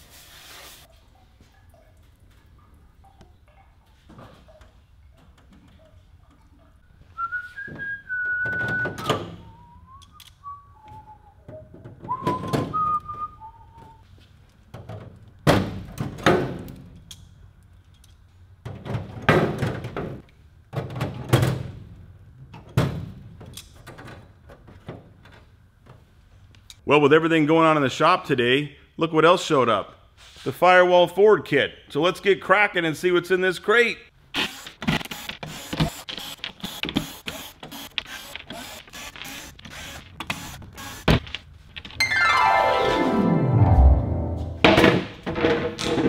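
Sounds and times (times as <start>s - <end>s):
person whistling a tune: 7.2s - 14.0s.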